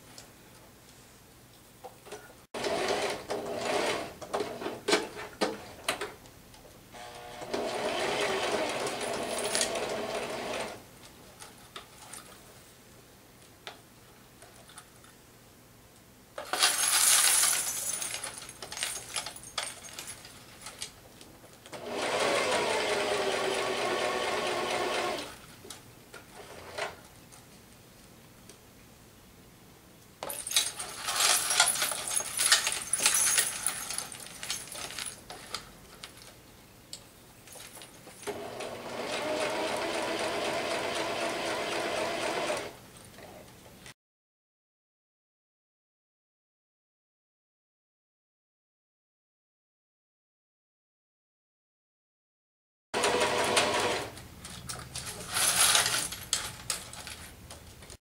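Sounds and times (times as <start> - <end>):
sewing machine stitching: 2.6 - 4.7, 7.0 - 10.8, 21.7 - 25.3, 38.3 - 42.8, 53.0 - 54.2
metal coins jingling: 16.5 - 20.4, 30.2 - 35.3, 54.8 - 57.3.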